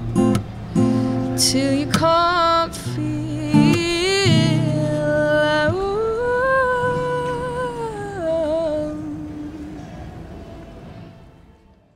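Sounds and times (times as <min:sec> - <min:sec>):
acoustic guitar chord ringing: 0:00.0 - 0:11.0
woman singing wordless note: 0:01.4 - 0:10.1.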